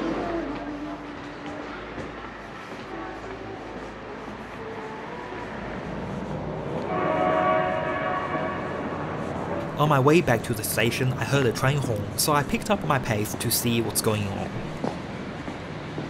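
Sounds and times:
street background noise: 0.0s - 16.0s
train horn chord: 2.8s - 4.3s, 6.8s - 9.7s.

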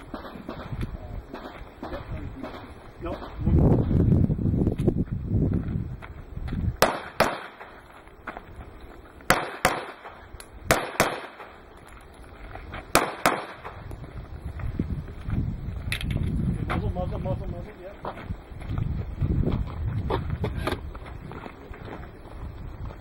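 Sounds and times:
pistol shots: 0.0s - 3.4s, 6.8s - 7.8s, 9.3s - 11.6s, 12.9s - 13.8s.

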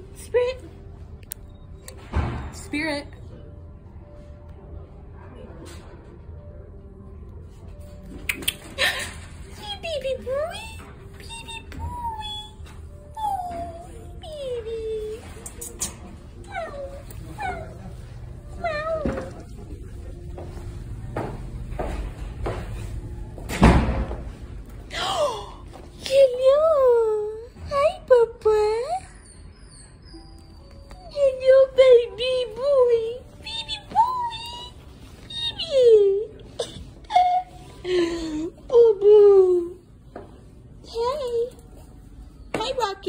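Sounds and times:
dog whining: 11.1s - 19.6s, 28.5s - 32.2s.

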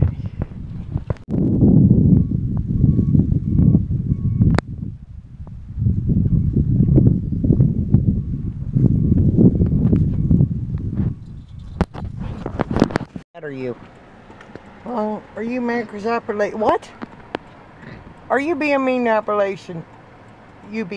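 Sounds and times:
wind buffeting on microphone: 0.0s - 13.2s, 14.5s - 20.9s.

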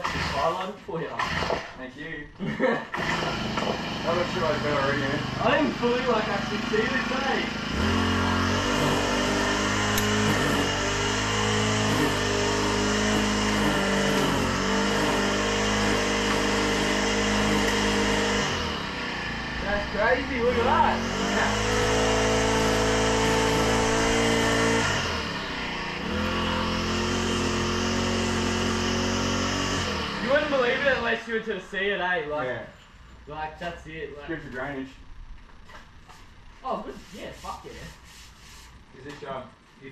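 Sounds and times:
lawn mower engine running: 0.0s - 0.6s, 1.2s - 1.7s, 2.9s - 31.2s.

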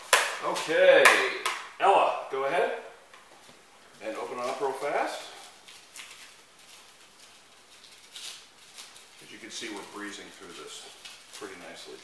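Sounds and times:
faint rustling: 3.2s - 12.0s.

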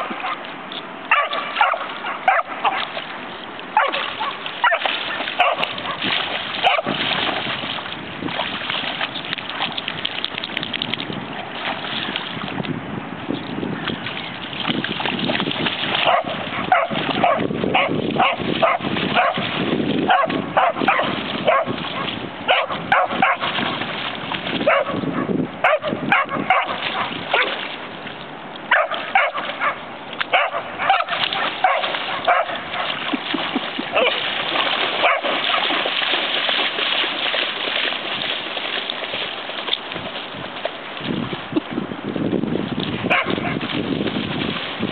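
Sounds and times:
water splashing: 0.0s - 44.9s
dog barking and yipping: 1.1s - 2.9s, 3.8s - 6.0s, 6.6s - 7.0s, 16.0s - 19.4s, 20.1s - 23.5s, 24.6s - 25.0s, 25.6s - 27.5s, 28.7s - 32.9s, 33.9s - 34.2s, 35.0s - 35.6s, 43.1s - 43.6s.

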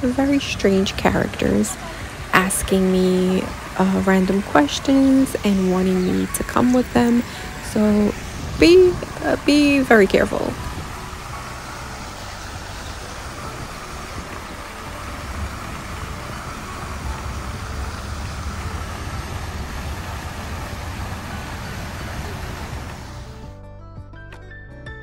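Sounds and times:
fountain water splashing: 0.0s - 23.5s
low rumble: 5.3s - 23.6s.

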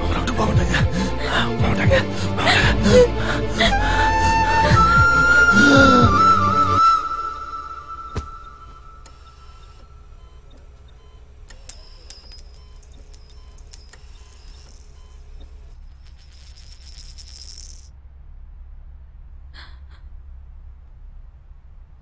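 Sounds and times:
metal ring striking floor: 11.6s - 15.0s.

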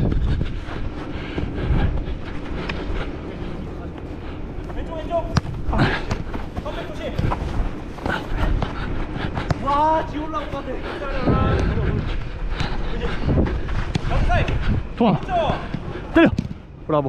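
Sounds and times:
wind rumble on microphone: 0.0s - 3.6s, 11.1s - 16.1s
running footsteps on artificial turf: 0.0s - 16.6s.

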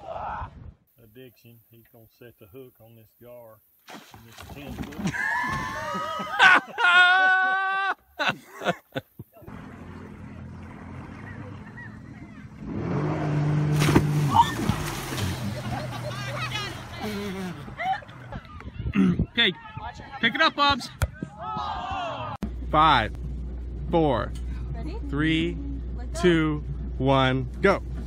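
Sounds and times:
jet ski engine running: 9.5s - 18.3s.

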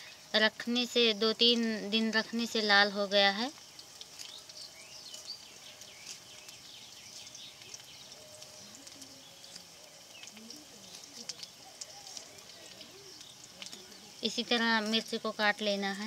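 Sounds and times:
faint chirps: 0.0s - 16.0s
faint distant voice: 8.4s - 14.3s.

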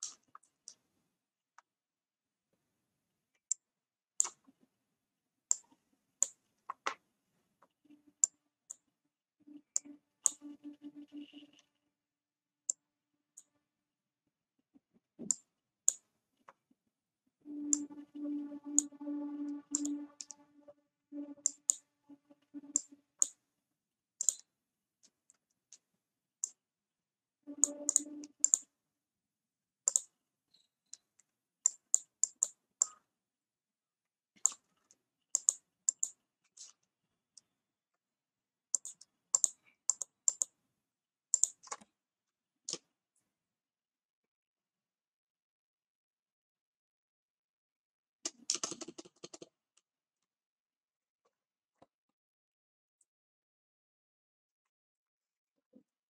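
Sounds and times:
low hum: 17.5s - 23.0s
computer clicks: 19.7s - 20.4s, 27.6s - 28.6s
computer mouse clicking: 27.6s - 28.6s, 29.9s - 30.1s, 35.4s - 36.7s, 38.8s - 40.5s, 41.4s - 41.9s.

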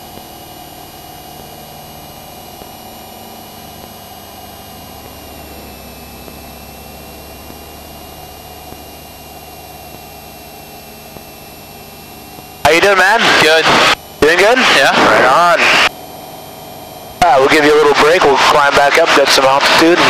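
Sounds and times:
aircraft engine drone: 0.0s - 20.0s
thin high whine: 0.0s - 20.0s.

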